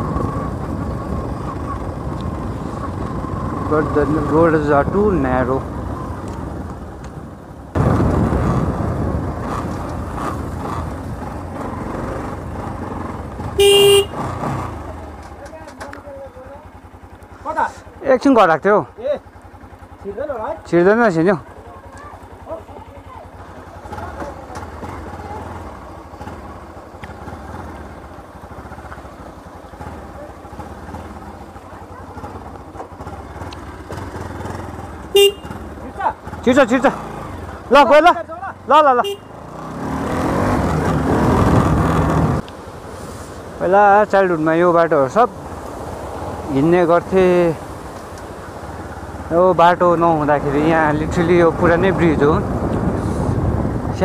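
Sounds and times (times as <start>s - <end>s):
motorcycle engine running: 0.0s - 54.0s
motorcycle horn blast: 13.6s - 14.3s, 35.1s - 35.7s, 39.0s - 39.5s.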